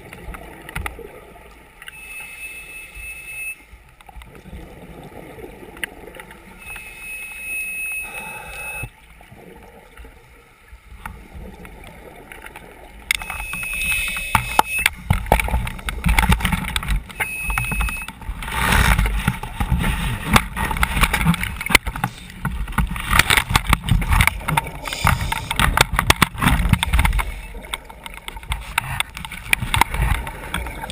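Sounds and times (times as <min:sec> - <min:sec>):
exhaled bubbles crackling underwater: 0:00.0 - 0:01.9, 0:03.9 - 0:07.0, 0:07.7 - 0:30.9
hissing whistle of inhalation: 0:06.9 - 0:08.9.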